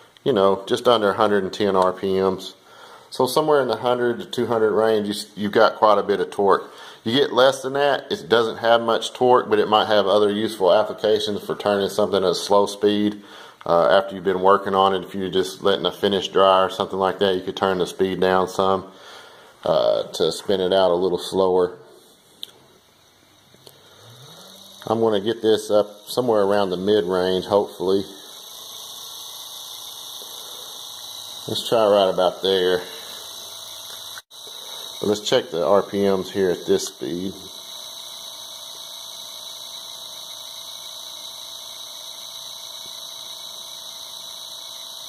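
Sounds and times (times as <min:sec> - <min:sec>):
electric motor humming: 0:22.8 - 0:45.0.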